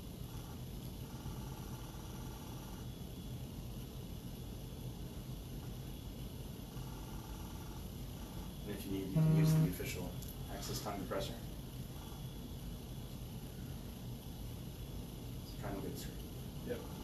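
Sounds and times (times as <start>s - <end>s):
intraoral scanner whirring: 0.0s - 3.5s, 5.8s - 17.0s.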